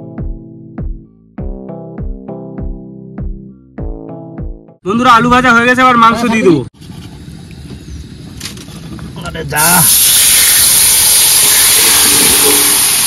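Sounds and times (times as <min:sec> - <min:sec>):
chicken sizzling in hot oil: 0:09.8 - 0:13.0.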